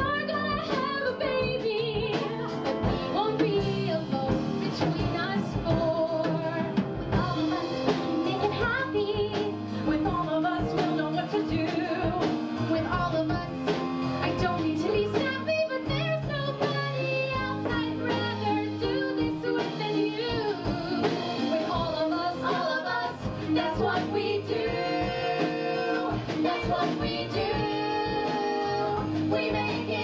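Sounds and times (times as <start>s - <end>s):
live band playing: 0.0s - 30.0s
steady drum beat: 0.0s - 30.0s
women singing: 0.0s - 30.0s.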